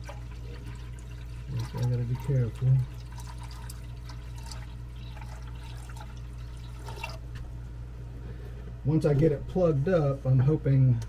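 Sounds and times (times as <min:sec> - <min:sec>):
water pouring with drips: 0:00.0 - 0:07.2
constant low hum: 0:00.0 - 0:11.0.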